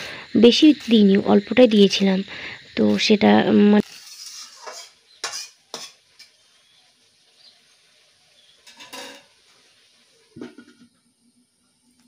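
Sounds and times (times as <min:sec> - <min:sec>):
woman speaking: 0:00.0 - 0:03.8
food sizzling in a wok: 0:00.0 - 0:12.0
metal utensil clinking on pan: 0:04.0 - 0:06.4, 0:08.6 - 0:09.4.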